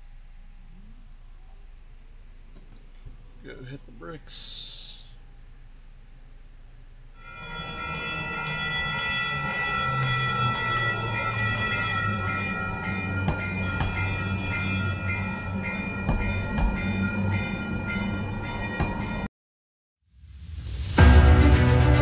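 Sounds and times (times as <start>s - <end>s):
high ringing tones: 7.2s - 19.3s
train motor hum: 7.3s - 19.1s.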